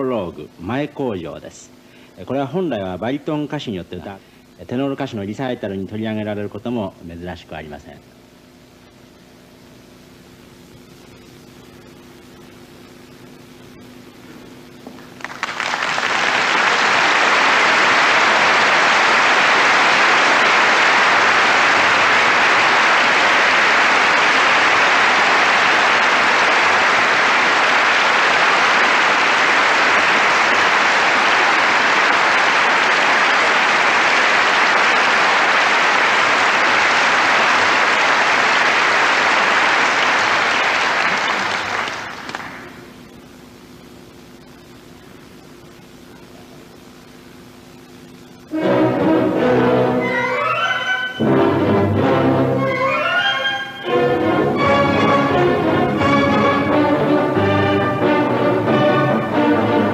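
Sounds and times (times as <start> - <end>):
audience applauding: 15.0 - 42.9, 52.6 - 59.9.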